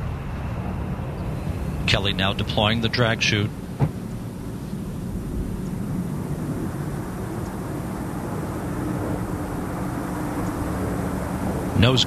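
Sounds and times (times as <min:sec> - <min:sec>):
faint low hum: 0:00.0 - 0:12.0
steady rumbling: 0:00.0 - 0:12.0.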